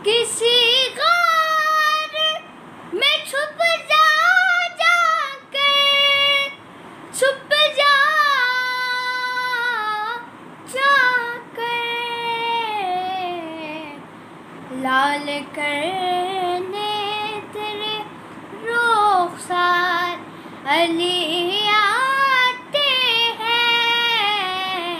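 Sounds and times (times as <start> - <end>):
boy singing unaccompanied: 0.0 - 14.0, 14.7 - 24.9.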